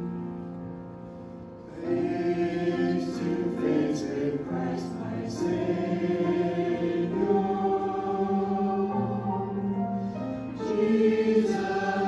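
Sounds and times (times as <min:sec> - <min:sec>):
choir singing a hymn: 0:01.6 - 0:12.0.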